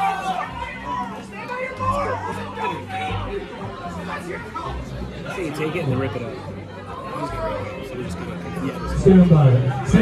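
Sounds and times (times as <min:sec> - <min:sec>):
background music: 0:00.0 - 0:10.0
crowd chatter: 0:00.0 - 0:10.0.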